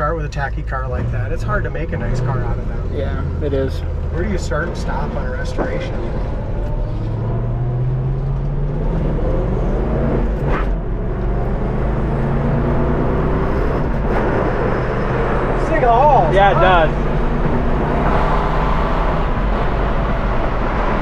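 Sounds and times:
car engine accelerating: 0.0 - 21.0.

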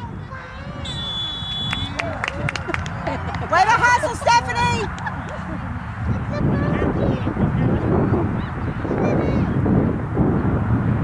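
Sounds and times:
wind buffeting microphone: 0.0 - 11.0
faint distant high calls: 0.8 - 2.1.

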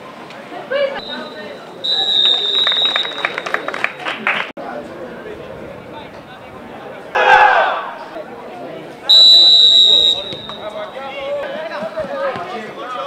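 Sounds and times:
players' voices: 0.2 - 13.0
referee's whistle blast: 1.0 - 3.7, 9.1 - 10.9.

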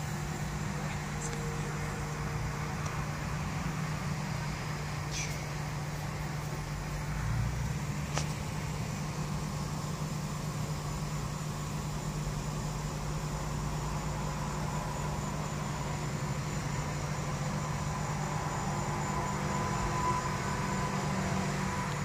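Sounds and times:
car engine hum: 0.0 - 22.0
faint high whine: 0.0 - 22.0
ventilation fan: 0.0 - 22.0.

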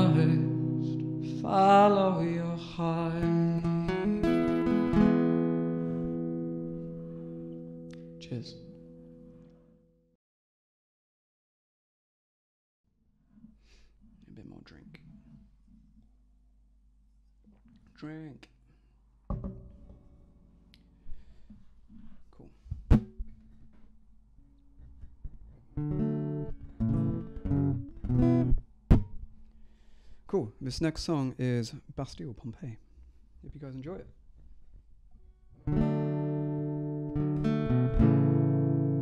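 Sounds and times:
acoustic guitar: 0.0 - 9.9, 19.3 - 30.2, 34.3 - 39.0
soft knock: 19.3 - 19.9
acoustic guitar strings ringing: 19.3 - 20.7.

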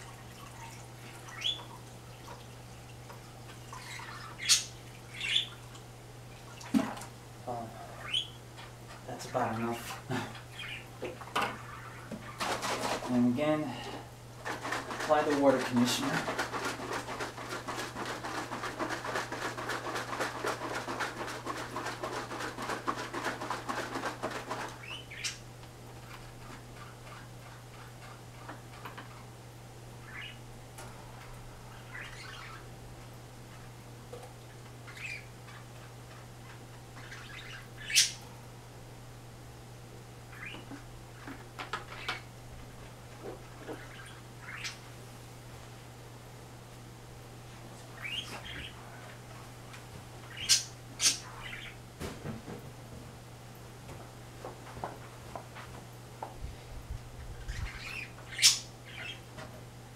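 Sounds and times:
steady low hum: 0.0 - 59.9
water splashing into fish tank: 5.6 - 7.2.

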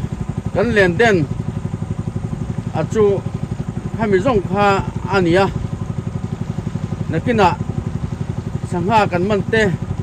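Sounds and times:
small boat engine chugging: 0.0 - 10.0.

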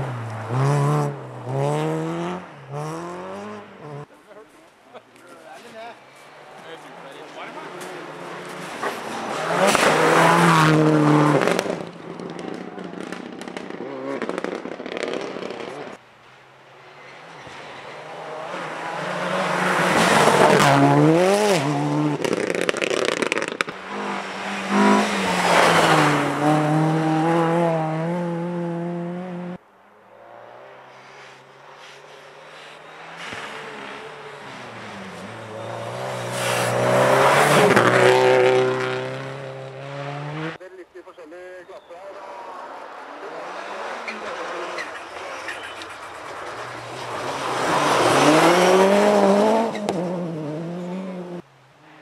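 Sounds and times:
rally car engines revving past: 0.0 - 4.1, 6.2 - 16.0, 16.8 - 40.6, 42.2 - 51.4.

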